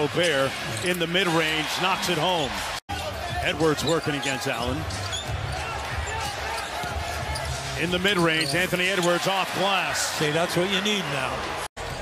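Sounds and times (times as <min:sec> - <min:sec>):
arena crowd hum: 0:00.0 - 0:12.0.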